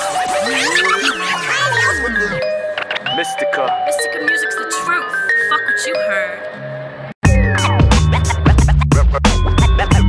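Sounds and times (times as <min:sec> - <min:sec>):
turntable scratches: 0:00.0 - 0:02.4
bass line: 0:00.0 - 0:03.4, 0:07.2 - 0:10.0
hip hop drum beat: 0:07.2 - 0:10.0.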